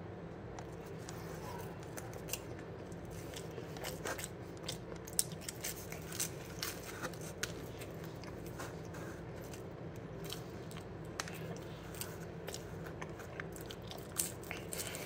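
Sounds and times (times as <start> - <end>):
steady low hum: 0.0 - 15.0
crunchy pizza chewing: 0.4 - 15.0.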